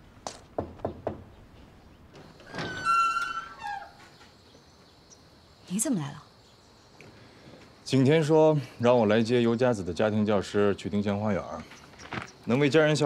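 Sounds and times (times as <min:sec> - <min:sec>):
wooden door creaking open: 0:02.0 - 0:04.4.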